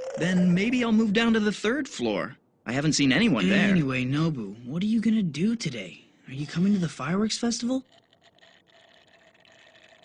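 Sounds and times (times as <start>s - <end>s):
sipping through a straw: 7.8s - 10.0s.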